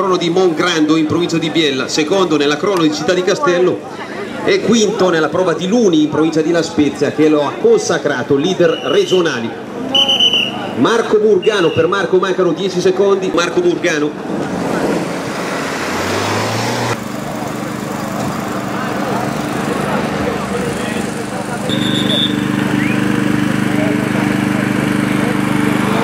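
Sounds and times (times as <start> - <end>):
background chatter: 0.0 - 15.4, 17.0 - 26.0
vehicle engine running: 13.7 - 26.0.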